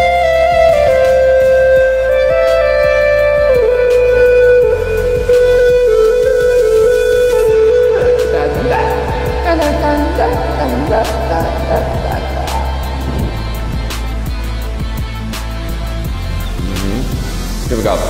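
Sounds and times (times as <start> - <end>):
flute-like melody: 0.0 - 18.0
steady beat and bass: 0.0 - 18.0.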